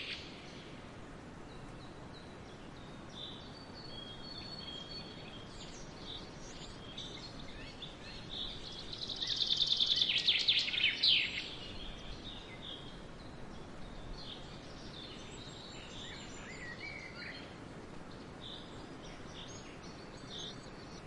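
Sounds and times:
steady background hiss: 0.0 - 21.0.

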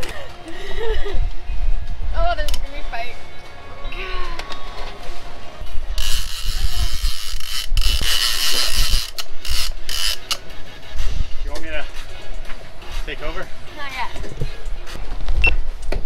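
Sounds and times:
fishing reel drag buzzing: 6.0 - 10.4
reel ratcheting: 6.0 - 10.4.

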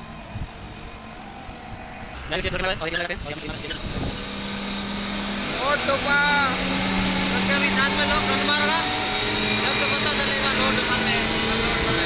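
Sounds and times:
diesel engine rumbling: 0.0 - 12.0
wind thumps on microphone: 2.1 - 4.3.

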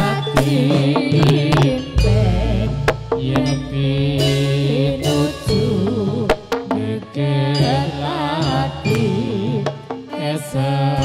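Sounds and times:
sharp percussive strokes: 0.0 - 10.4
person singing wavering line: 0.0 - 11.0.

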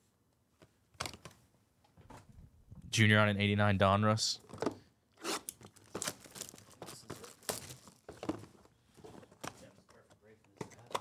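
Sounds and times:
cardboard rustling: 5.6 - 9.8.

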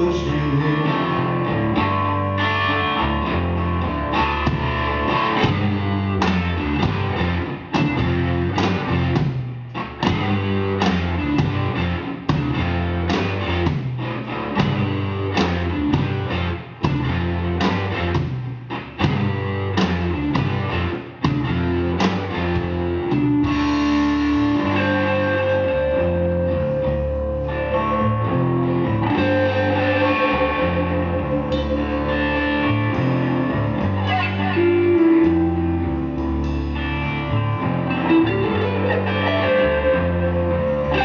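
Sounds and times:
bass guitar: 0.0 - 41.0
electric guitars: 0.0 - 41.0
drum kit beat: 4.3 - 25.4.

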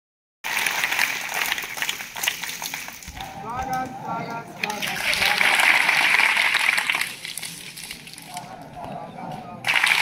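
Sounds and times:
children clapping: 0.4 - 3.8, 4.6 - 7.5, 9.7 - 10.0.

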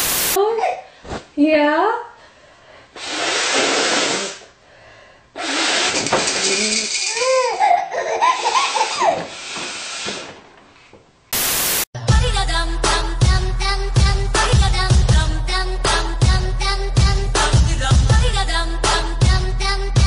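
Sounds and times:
rushing hissing noise: 0.0 - 0.4, 11.3 - 11.9.

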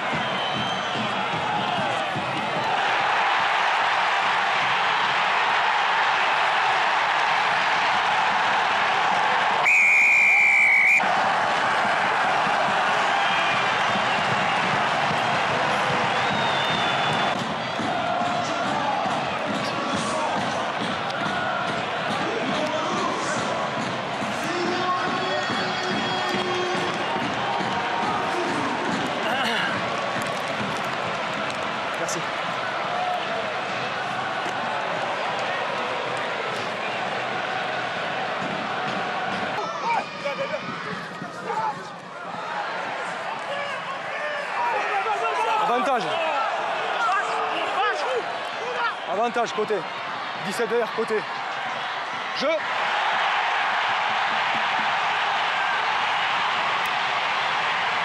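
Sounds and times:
stadium crowd noise: 0.0 - 58.0
referee's whistle blast: 9.6 - 11.0.

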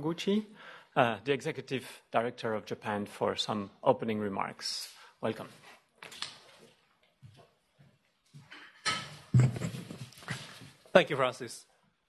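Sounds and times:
microphone bumps and rustling: 9.3 - 10.8.

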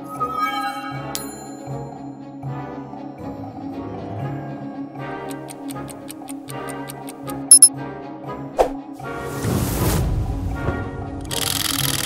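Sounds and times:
background music: 0.0 - 12.0
short high beeps: 7.5 - 7.7.

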